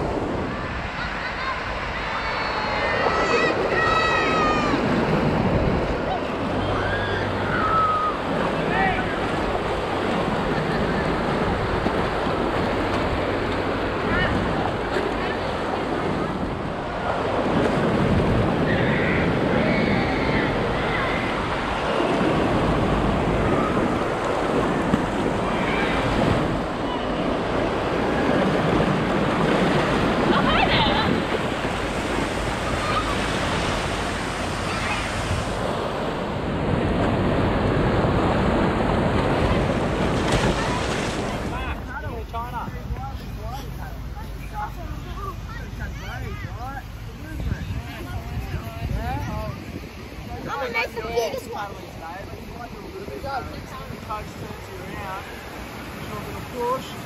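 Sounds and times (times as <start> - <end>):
surf breaking: 0.0 - 57.0
whitewash rushing: 0.0 - 57.0.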